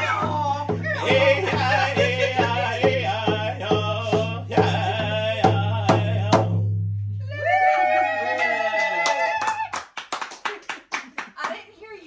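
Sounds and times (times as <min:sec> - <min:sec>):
voices singing a held note: 0:00.0 - 0:06.2
hands clapping quickly: 0:08.7 - 0:11.6.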